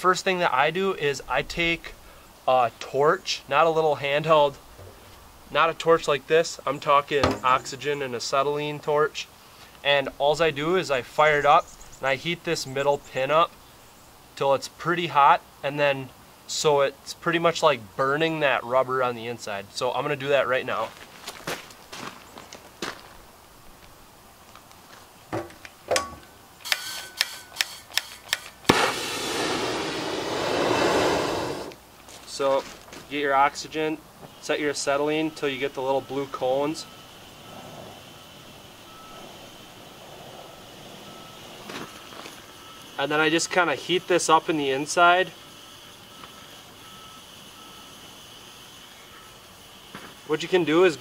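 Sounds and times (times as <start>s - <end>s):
torch lighting pop: 28.3s - 31.8s
torch flame hissing: 28.7s - 31.8s.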